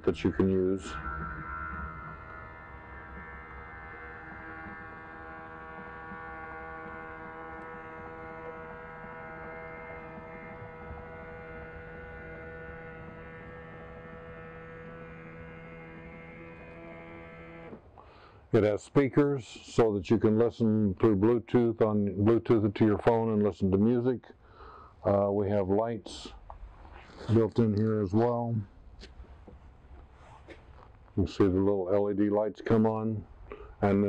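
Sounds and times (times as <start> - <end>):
electric awning motor humming: 0.0 - 18.0.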